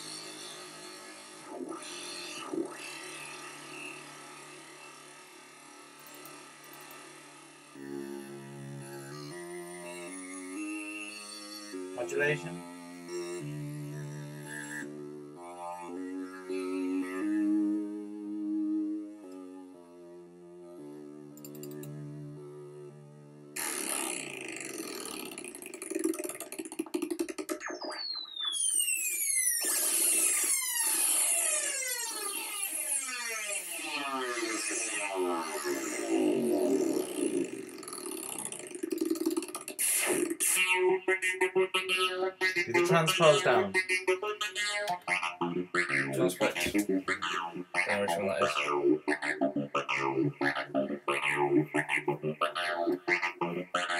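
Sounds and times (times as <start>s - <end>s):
synthesizer notes and pitch sweeps: 0.0s - 19.6s, 20.8s - 53.9s.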